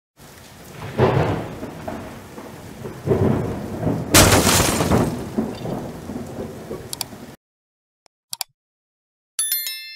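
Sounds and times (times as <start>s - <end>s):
rumbling crackling intro effect: 0.7s - 6.7s.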